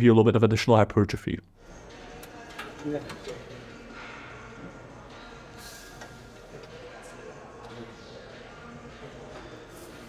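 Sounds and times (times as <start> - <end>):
gym background noise: 1.7 - 10.0.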